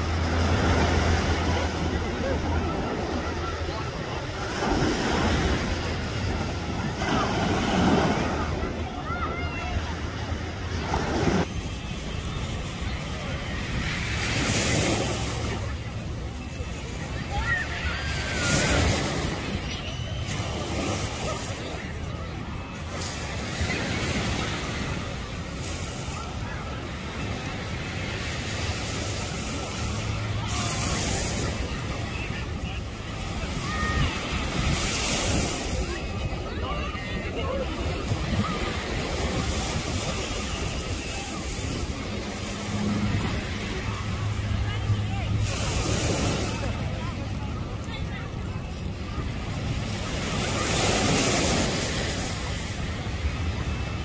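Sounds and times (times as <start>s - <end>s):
faint voices: 0.0s - 54.0s
people chattering: 0.0s - 54.0s
small waves breaking on sand: 0.0s - 54.0s
surf washing on shore: 0.0s - 54.0s.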